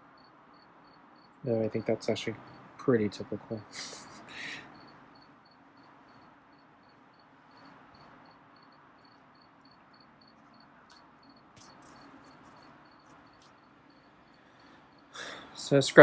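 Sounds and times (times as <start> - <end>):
cricket chirping: 0.0 - 16.0.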